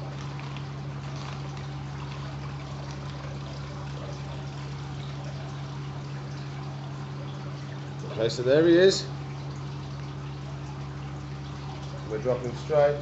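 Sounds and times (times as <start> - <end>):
water trickling in fish tank: 0.0 - 13.0.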